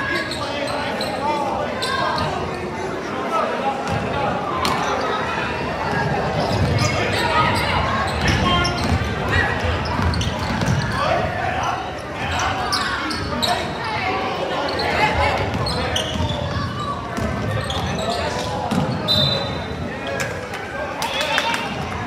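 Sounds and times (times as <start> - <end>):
sneakers squeaking on hardwood floor: 0.0 - 1.2, 1.8 - 2.6, 5.9 - 13.8, 14.6 - 19.8
basketball dribbling: 8.2 - 10.9.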